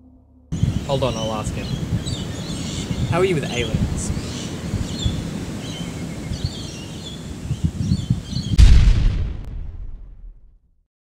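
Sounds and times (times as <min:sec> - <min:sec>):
low rumbling wind: 0:00.0 - 0:10.3
birds chirping: 0:00.5 - 0:08.6
loud boom: 0:08.5 - 0:10.6.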